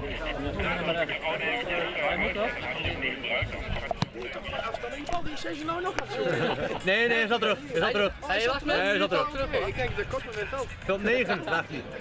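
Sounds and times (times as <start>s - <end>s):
men talking and calling out: 0.0s - 12.0s.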